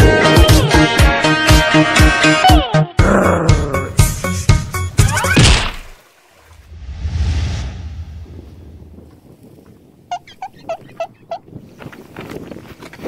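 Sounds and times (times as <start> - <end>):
wind rumble on microphone: 6.7 - 13.0.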